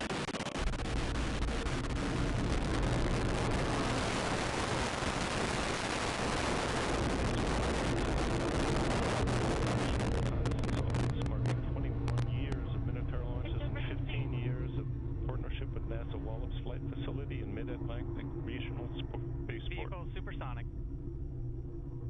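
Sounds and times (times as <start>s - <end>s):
rocket motor rushing roar: 0.6s - 19.7s
voices: 8.9s - 20.6s.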